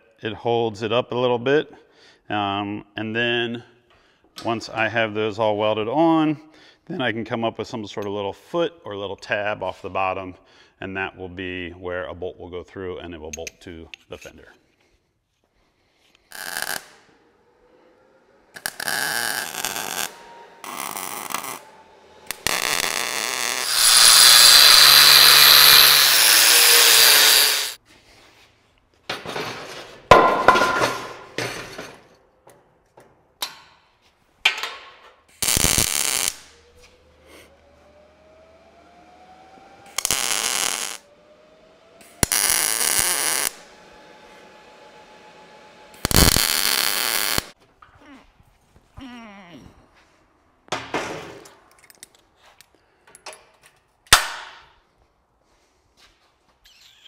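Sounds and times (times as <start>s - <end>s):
welder arc crackling: 16.3s - 17.1s, 18.5s - 27.8s, 35.3s - 36.9s, 39.8s - 41.0s, 42.0s - 43.7s, 45.9s - 47.6s.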